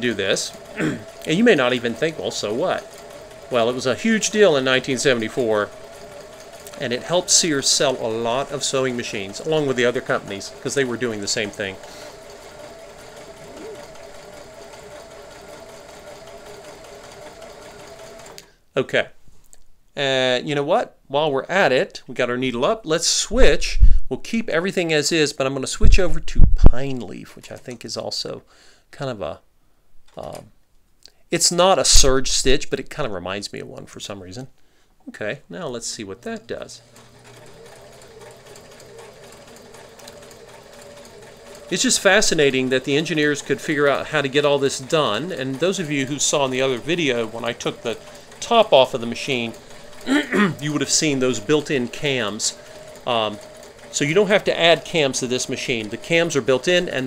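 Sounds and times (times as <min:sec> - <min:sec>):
sewing machine running: 0:00.0 - 0:18.5, 0:35.7 - 0:57.0.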